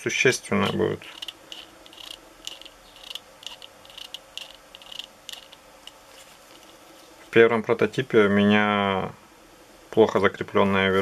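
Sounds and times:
plastic model clicks and ticks: 1.1 - 6.0.

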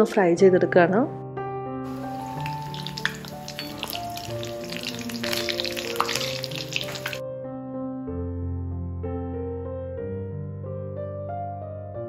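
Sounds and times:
background piano music: 0.0 - 12.0
hot oil sizzling and crackling: 1.9 - 7.2.

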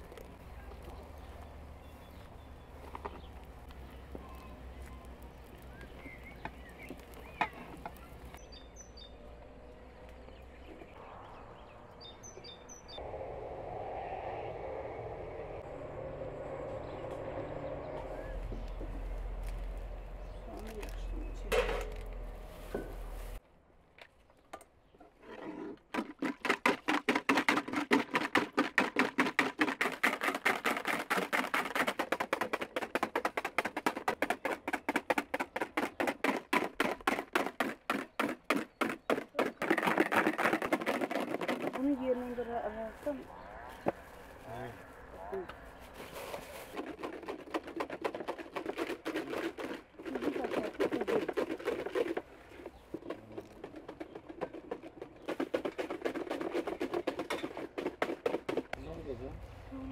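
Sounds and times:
bird chirps: 0.6 - 13.0, 16.2 - 21.5
fast strokes working food by hand: 46.0 - 58.6.

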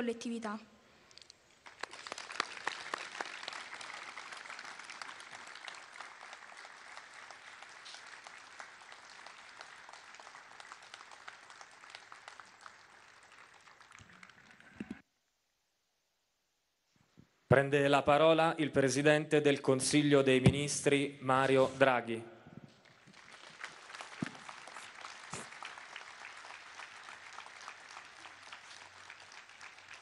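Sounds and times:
audience applauding: 1.6 - 15.0, 22.7 - 30.0.

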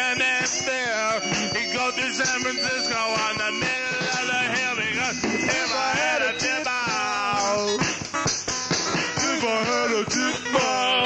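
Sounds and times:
rock and roll song: 0.0 - 11.0.

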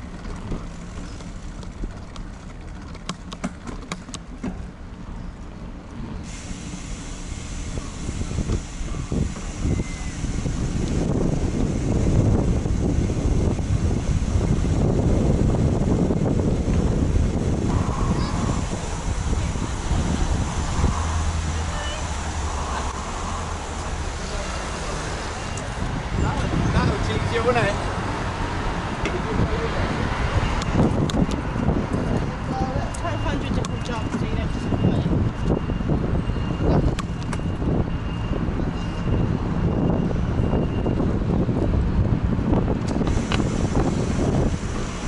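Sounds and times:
bicycle tyres rolling on paving: 0.0 - 5.6, 6.3 - 27.9, 41.0 - 45.0
wind rumbling on microphone: 0.0 - 45.0.

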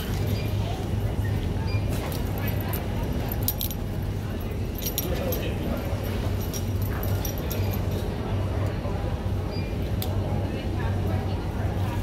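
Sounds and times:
low hum of airport terminal: 0.0 - 12.0
metal jingling and clicks: 2.0 - 8.0.

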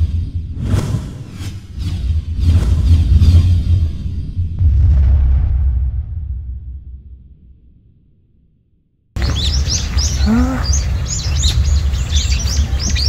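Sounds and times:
sweeping whooshes: 0.0 - 4.8
deep steady rumble: 0.0 - 8.4, 9.2 - 13.0
deep boom: 2.2 - 9.8.

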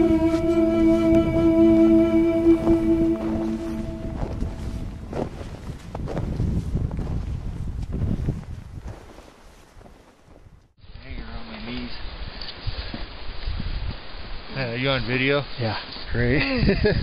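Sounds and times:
held musical chord: 0.0 - 5.1
wind buffeting microphone: 0.0 - 10.7, 12.0 - 14.5, 16.2 - 17.0.

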